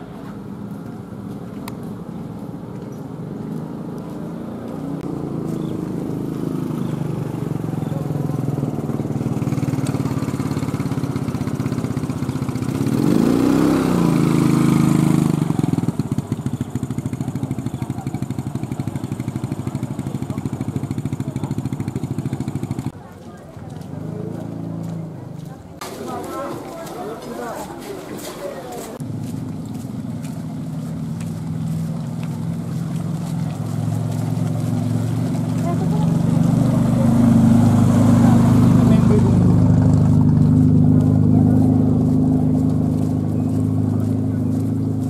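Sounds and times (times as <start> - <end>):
motorcycle engine passing by: 2.3 - 27.7, 28.9 - 45.0
engine running with fast beat: 3.2 - 23.0, 29.0 - 45.0.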